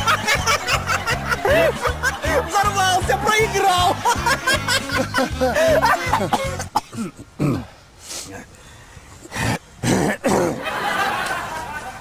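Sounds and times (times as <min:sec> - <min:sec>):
man coughing: 0:09.4 - 0:10.6.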